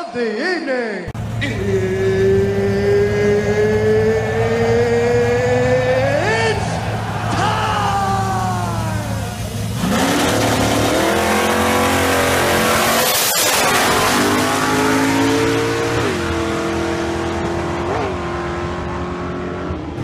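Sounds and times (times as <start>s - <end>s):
drag race cars accelerating: 1.2s - 20.0s.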